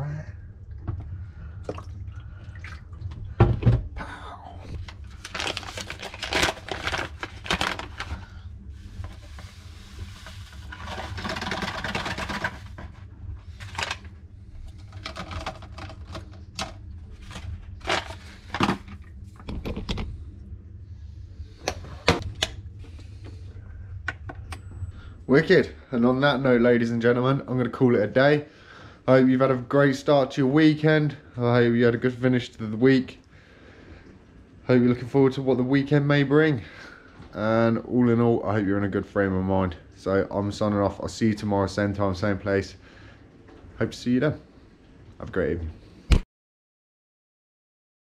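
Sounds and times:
water pouring: 0:01.6 - 0:03.3.

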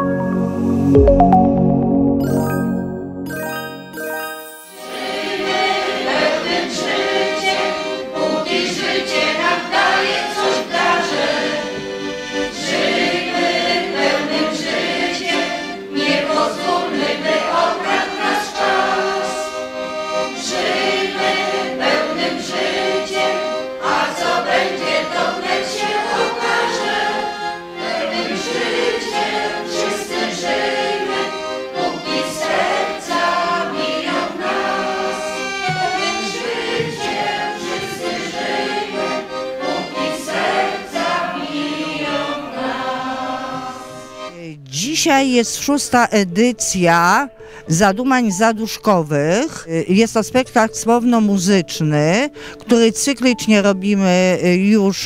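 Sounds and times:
accordion: 0:00.0 - 0:55.0
group of voices singing: 0:04.8 - 0:44.3.

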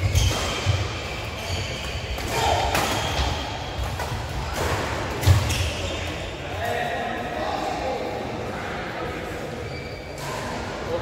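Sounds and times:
racket hitting shuttlecock: 0:00.0 - 0:01.1.

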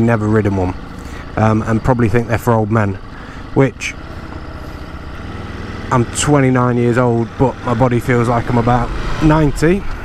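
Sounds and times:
motorcycle engine rumbling: 0:00.0 - 0:10.0
wind and road noise: 0:00.0 - 0:10.0.

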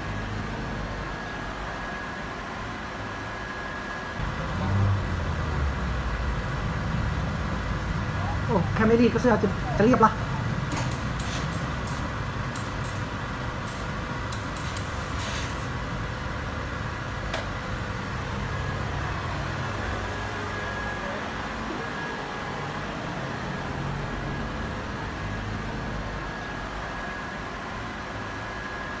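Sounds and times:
suction fan humming: 0:00.0 - 0:29.0
sharp click: 0:10.7 - 0:12.0
steam iron bursts: 0:10.7 - 0:15.7.

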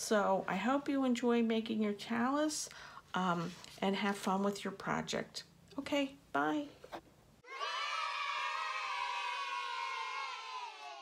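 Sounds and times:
children cheering and shouting: 0:07.4 - 0:11.0.

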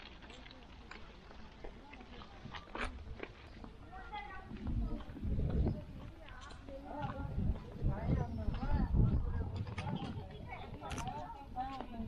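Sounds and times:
faint voices: 0:00.0 - 0:12.0
footsteps on concrete: 0:00.0 - 0:12.0.

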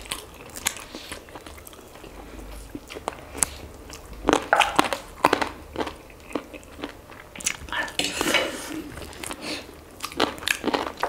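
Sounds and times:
biting and chewing: 0:00.0 - 0:08.1, 0:09.0 - 0:11.0.

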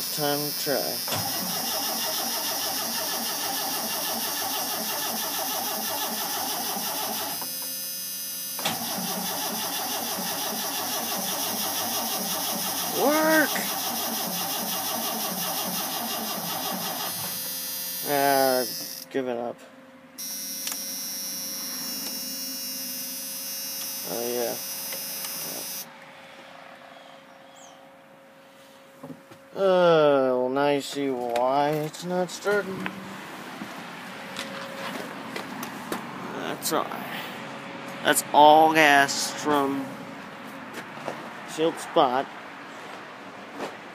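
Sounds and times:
starter cranking truck engine: 0:00.0 - 0:07.5, 0:08.6 - 0:17.4.

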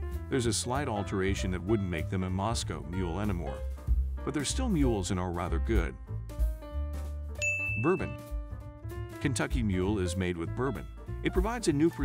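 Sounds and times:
background music with bass: 0:00.0 - 0:12.0
bright high ding: 0:07.4 - 0:08.3.

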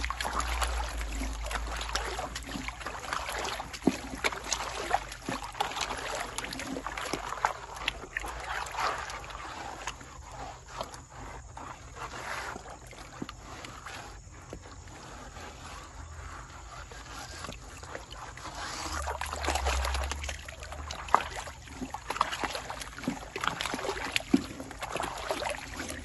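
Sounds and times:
water splashing in a pan: 0:00.0 - 0:14.9, 0:17.0 - 0:26.0.

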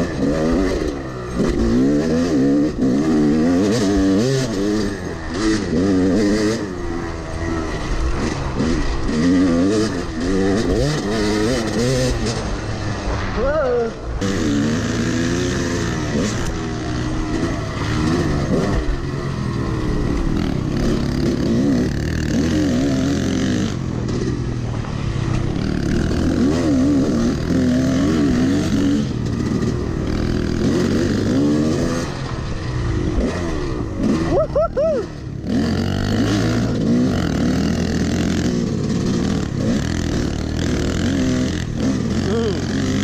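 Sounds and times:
dirt bike engine revving: 0:00.0 - 0:43.0.

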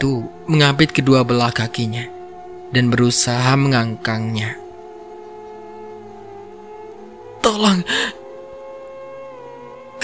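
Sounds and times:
sustained drone of held tones: 0:00.0 - 0:10.0.

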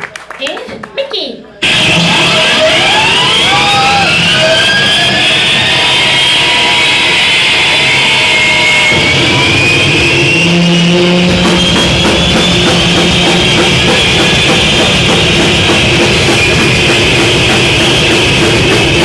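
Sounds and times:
distorted noise rock band: 0:01.6 - 0:19.0.

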